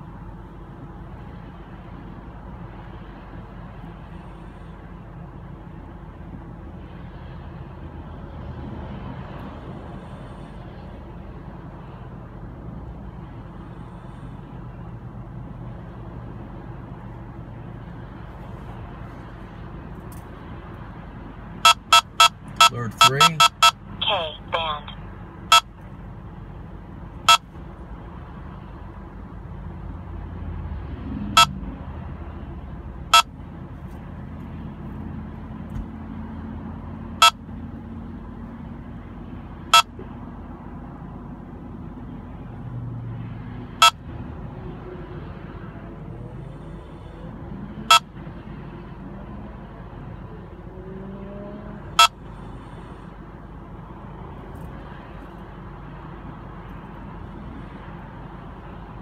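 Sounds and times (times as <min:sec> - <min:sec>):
car and road noise: 0:00.0 - 0:59.0
radar detector short beeps: 0:21.6 - 0:24.3, 0:37.2 - 0:37.4, 0:39.7 - 0:39.9, 0:43.8 - 0:44.0, 0:52.0 - 0:52.2.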